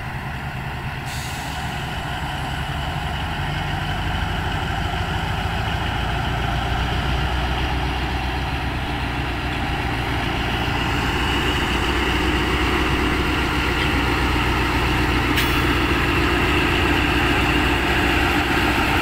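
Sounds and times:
locomotive engine droning: 0.0s - 19.0s.

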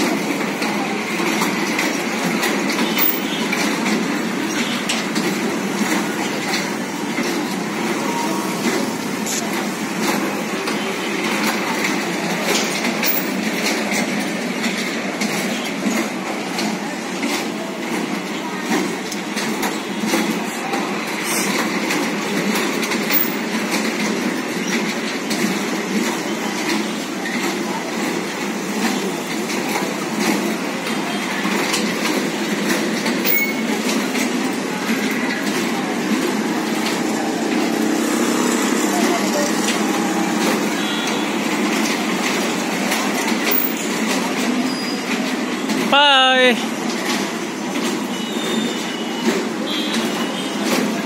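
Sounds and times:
carousel mechanical rumble: 0.0s - 51.0s.

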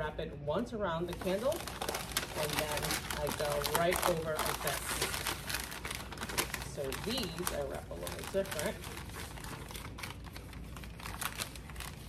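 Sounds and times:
packing paper crinkling: 1.0s - 12.0s.

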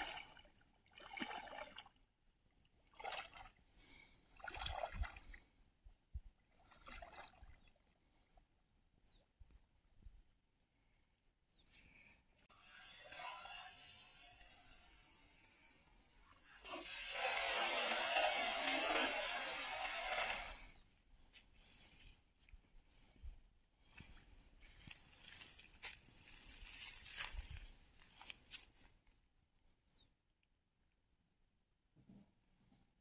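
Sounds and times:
water splashing and sloshing: 0.0s - 8.4s, 16.2s - 20.8s.

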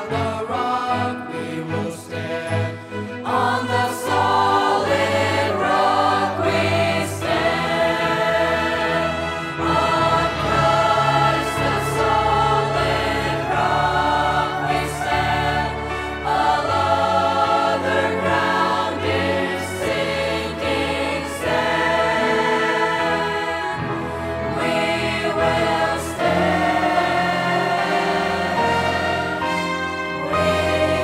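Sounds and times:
choir singing: 0.0s - 31.0s.

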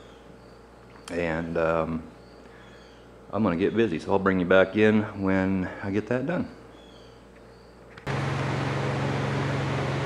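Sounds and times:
ventilation fans rushing: 7.2s - 10.0s
low motor hum: 8.0s - 10.0s.

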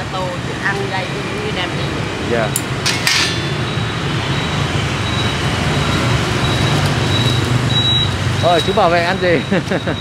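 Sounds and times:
traffic engine rumble: 0.0s - 10.0s.

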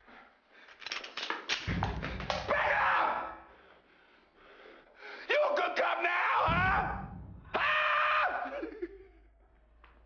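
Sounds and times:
heavy thud: 1.7s - 2.7s, 6.5s - 7.7s.

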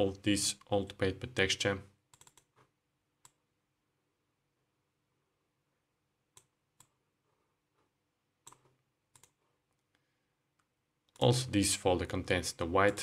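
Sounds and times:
computer mouse clicks: 2.1s - 3.4s, 6.3s - 7.0s, 8.4s - 9.8s.

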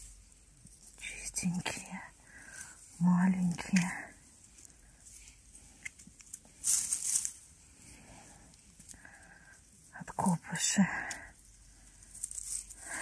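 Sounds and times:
dry grass rustling: 0.0s - 9.9s, 10.8s - 13.0s.

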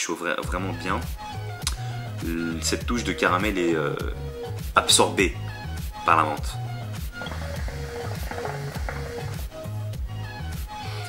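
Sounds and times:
background music with bass: 0.4s - 11.0s
hookah water bubbling: 5.4s - 10.4s.

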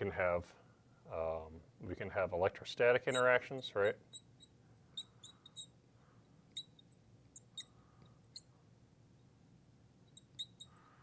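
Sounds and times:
marker squeaking on glass: 3.0s - 8.5s, 9.2s - 11.0s.

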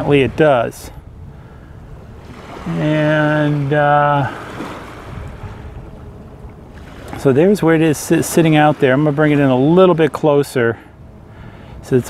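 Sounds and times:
wind buffeting microphone: 0.0s - 11.8s.

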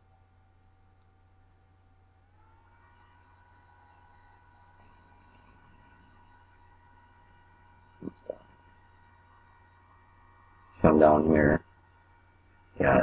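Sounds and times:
faint steady tone: 0.0s - 13.0s
low steady hum: 0.0s - 13.0s.

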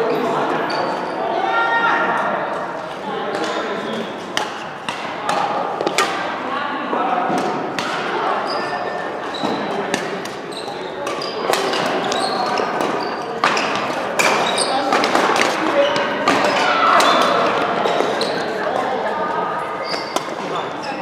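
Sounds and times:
background voices in hall: 0.0s - 21.0s
racket hitting shuttlecock: 4.3s - 6.4s, 7.3s - 8.1s, 9.9s - 18.4s, 19.9s - 20.6s.

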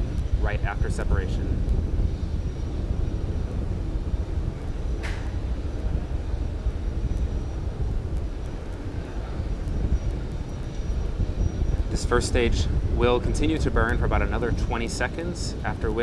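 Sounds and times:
rocket engines deep rumble: 0.0s - 16.0s.

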